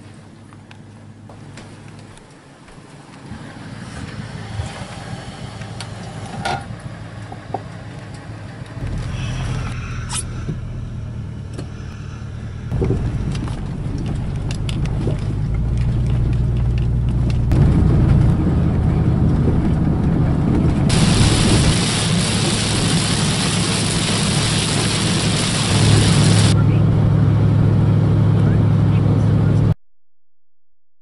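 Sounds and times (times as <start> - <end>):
truck engine hum and road rumble: 0.0 - 29.8
tyre hiss on wet road: 20.9 - 26.6.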